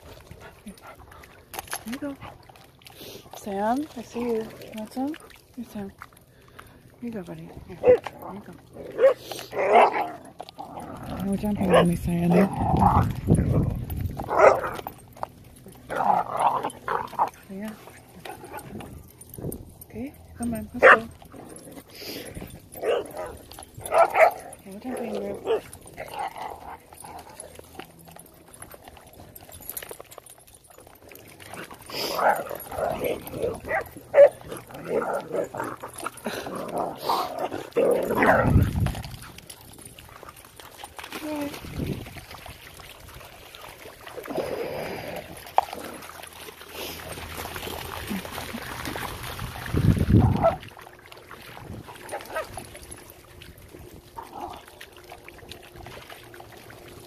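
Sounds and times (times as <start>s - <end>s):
dogs barking: 8.9s - 10.3s, 11.6s - 13.1s, 14.2s - 15.0s, 20.8s - 21.7s, 22.8s - 24.6s, 32.1s - 35.9s, 52.0s - 52.6s
dogs whimpering: 31.5s - 38.7s.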